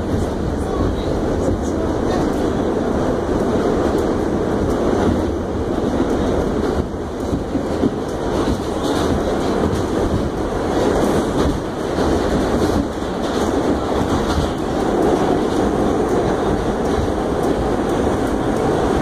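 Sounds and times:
subway car rumble in tunnel: 0:00.0 - 0:19.0
wheels clicking over rails: 0:00.0 - 0:19.0.

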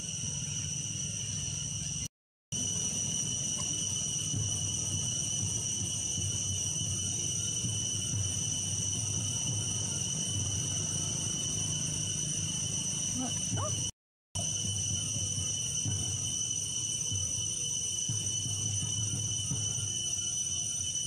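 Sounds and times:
insects droning: 0:00.0 - 0:21.0.

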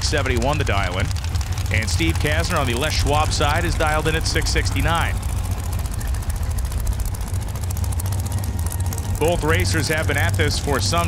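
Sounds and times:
race car engines idling: 0:00.0 - 0:11.0.

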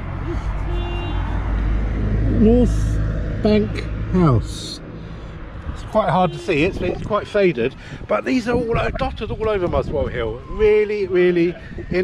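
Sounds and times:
vehicle passing rumble: 0:00.0 - 0:08.2.

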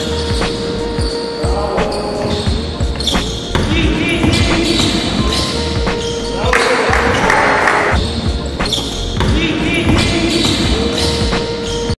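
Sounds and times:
music: 0:00.0 - 0:12.0
players' voices: 0:01.0 - 0:11.6
basketball bouncing on wooden floor: 0:02.4 - 0:06.2, 0:08.0 - 0:11.4.

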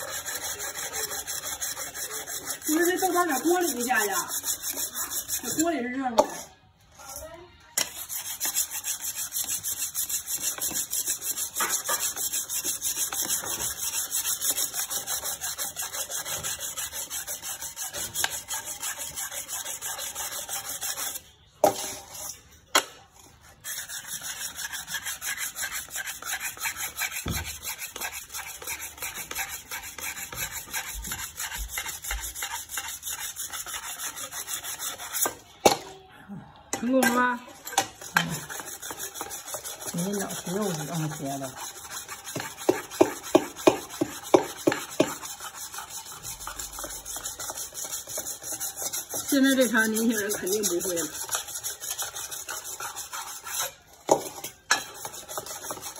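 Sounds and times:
blade rubbed on wet whetstone: 0:00.0 - 0:07.2, 0:07.8 - 0:22.4, 0:23.3 - 0:35.5, 0:37.0 - 0:55.9.

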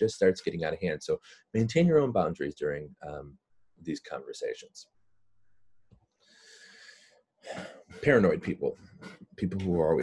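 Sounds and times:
man speaking: 0:00.0 - 0:04.9, 0:07.5 - 0:10.0
man breathing in: 0:06.2 - 0:07.2.

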